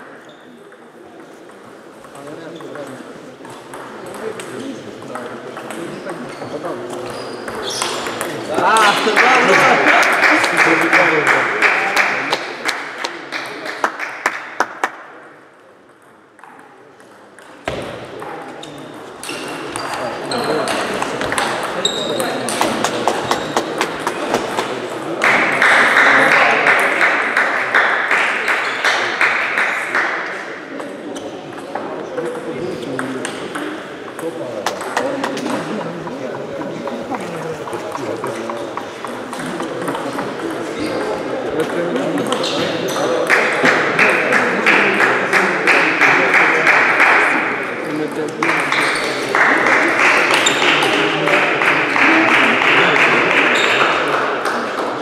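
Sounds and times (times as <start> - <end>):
voices chattering: 0.0 - 12.5, 17.7 - 55.0.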